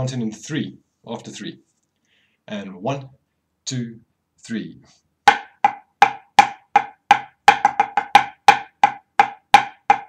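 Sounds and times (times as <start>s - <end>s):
drumsticks striking practice pad: 5.3s - 10.0s.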